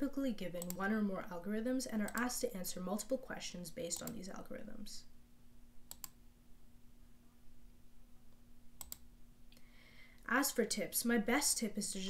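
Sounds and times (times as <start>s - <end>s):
low steady hum: 0.0s - 12.0s
computer clicking: 0.5s - 0.9s, 2.0s - 3.1s, 3.9s - 4.3s, 5.8s - 6.2s, 8.8s - 9.1s.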